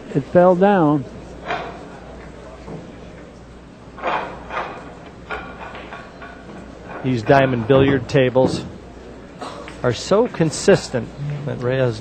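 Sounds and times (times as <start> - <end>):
pool balls clacking: 4.0 - 8.9.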